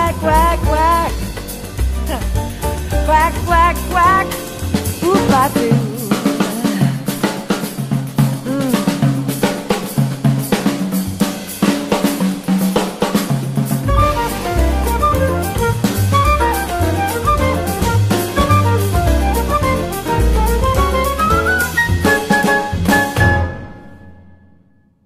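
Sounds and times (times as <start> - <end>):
big-band jazz samba: 0.0 - 24.1
drum kit playing: 0.0 - 24.1.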